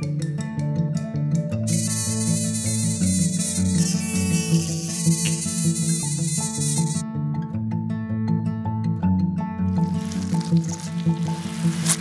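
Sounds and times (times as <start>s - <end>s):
plucked background music: 0.0s - 12.0s
slurping through a straw: 9.8s - 12.0s.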